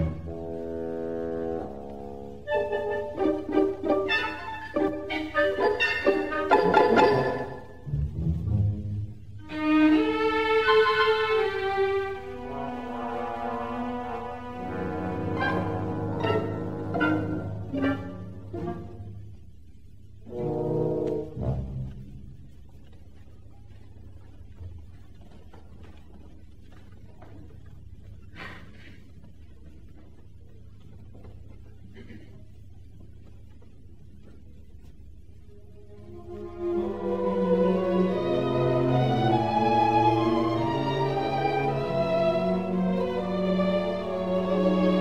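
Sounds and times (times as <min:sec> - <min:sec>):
orchestra holding soft chords: 0:00.0 - 0:28.4, 0:29.0 - 0:45.0.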